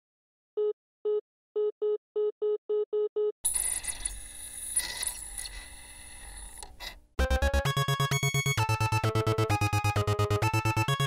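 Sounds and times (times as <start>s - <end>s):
buzzing electronic noise: 3.5s - 6.7s.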